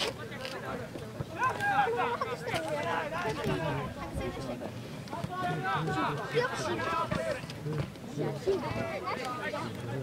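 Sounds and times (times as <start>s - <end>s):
voices shouting: 1.3s - 3.7s.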